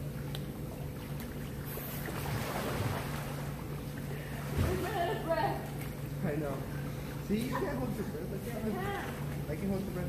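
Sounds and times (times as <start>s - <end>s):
pool water splashing: 0.0s - 10.0s.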